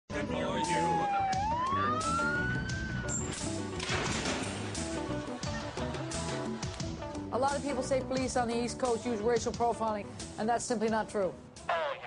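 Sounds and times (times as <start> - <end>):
theme music: 0.1 - 9.9
police siren wail: 0.3 - 3.6.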